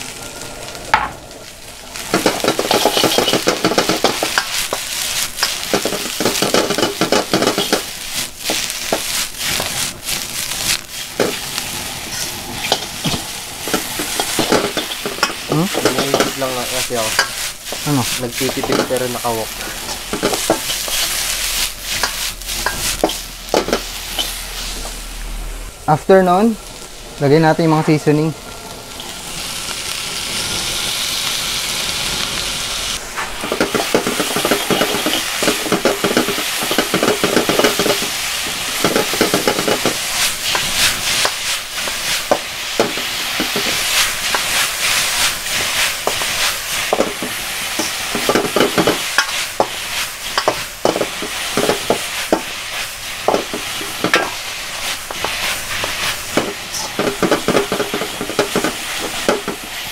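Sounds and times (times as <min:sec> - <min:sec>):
food sizzling in a wok: 0:00.0 - 0:59.9
metal spatula scraping a wok: 0:02.2 - 0:11.4, 0:12.1 - 0:25.0, 0:33.2 - 0:50.6, 0:51.2 - 0:59.2.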